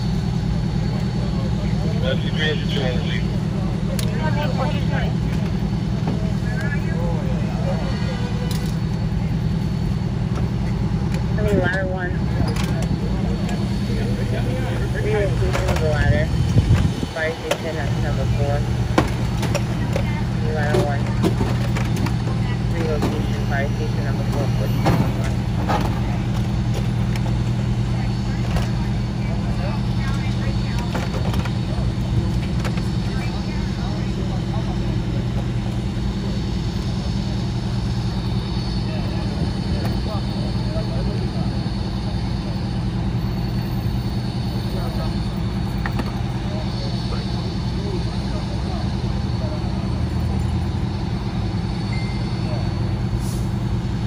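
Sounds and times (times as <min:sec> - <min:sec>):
crew voices talking: 0:00.0 - 0:54.0
engine idling: 0:00.0 - 0:54.0.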